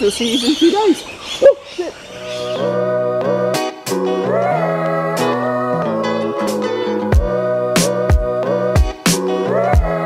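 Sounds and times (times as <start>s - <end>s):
music with held chords: 2.2s - 10.0s.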